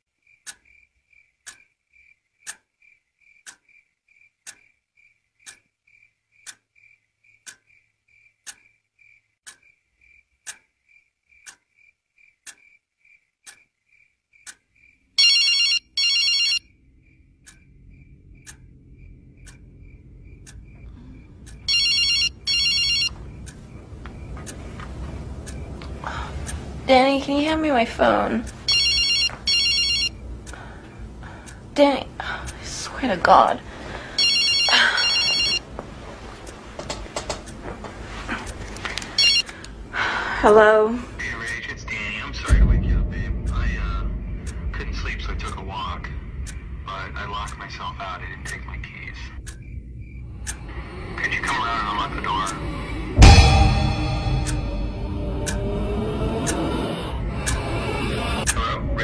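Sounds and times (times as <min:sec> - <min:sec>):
clock ticking: 0:00.4 - 0:00.8, 0:01.4 - 0:02.7, 0:03.3 - 0:03.8, 0:04.4 - 0:04.7, 0:05.4 - 0:08.7, 0:09.4 - 0:10.7, 0:11.3 - 0:11.6, 0:12.4 - 0:12.8, 0:13.4 - 0:13.7, 0:14.4 - 0:14.6, 0:17.4 - 0:17.7, 0:18.4 - 0:27.7, 0:28.4 - 0:37.7, 0:38.4 - 0:39.9, 0:42.5 - 0:46.8, 0:47.4 - 0:47.6, 0:48.4 - 0:48.7, 0:49.4 - 0:49.8, 0:50.4 - 0:55.7
telephone ringing electronically: 0:15.2 - 0:16.7, 0:21.6 - 0:23.2, 0:28.6 - 0:30.2, 0:34.2 - 0:35.6, 0:39.2 - 0:39.5.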